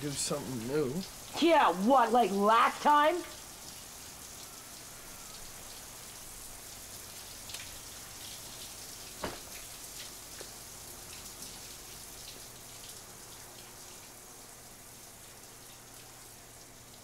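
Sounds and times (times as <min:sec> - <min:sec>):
running water hiss: 0:00.0 - 0:17.0.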